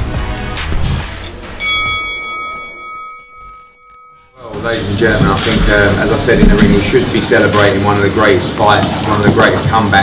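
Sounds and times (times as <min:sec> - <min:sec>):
intro music: 0:00.0 - 0:08.4
bell-like chime: 0:01.6 - 0:04.6.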